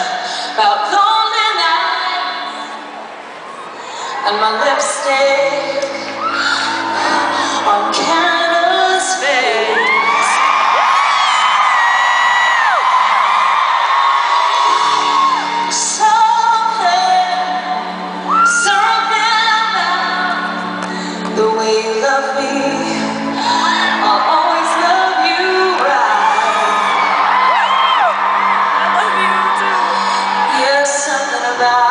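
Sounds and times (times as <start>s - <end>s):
woman singing with vibrato: 0.0s - 2.8s, 4.1s - 10.4s, 14.6s - 27.2s, 28.8s - 31.9s
piano: 0.0s - 31.9s
audience whooping and screaming: 5.8s - 17.2s, 18.1s - 19.1s, 23.4s - 31.9s.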